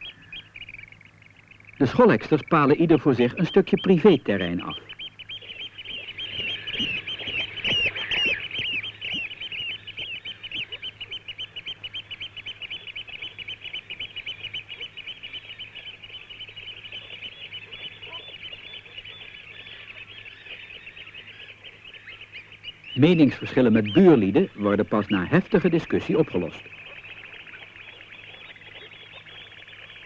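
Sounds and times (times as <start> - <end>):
oystercatchers piping: 0.0 - 30.0.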